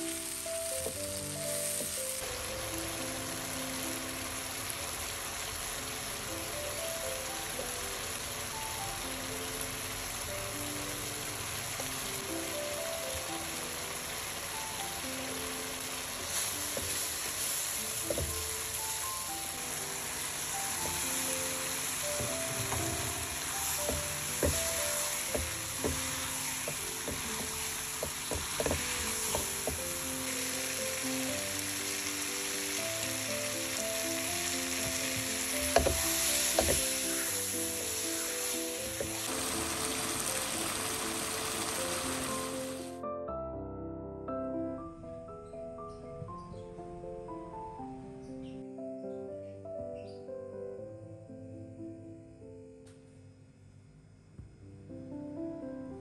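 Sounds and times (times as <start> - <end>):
chili paste sizzling in a wok: 0.0 - 43.0
soft background music: 0.0 - 53.8
spatula knocking against pan: 23.9 - 29.8, 35.7 - 36.9.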